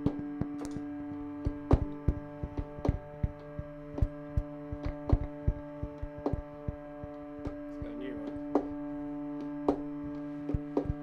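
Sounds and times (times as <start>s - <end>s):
soft low thumps: 0.0s - 11.0s
violin drone: 0.0s - 11.0s.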